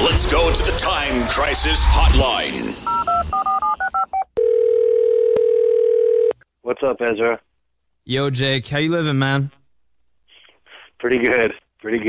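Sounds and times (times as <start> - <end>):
telephone line tone: 2.9 - 6.4.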